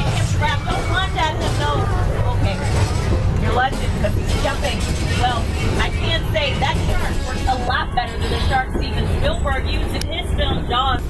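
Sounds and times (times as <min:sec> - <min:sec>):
tram rumbling: 0:00.0 - 0:11.0.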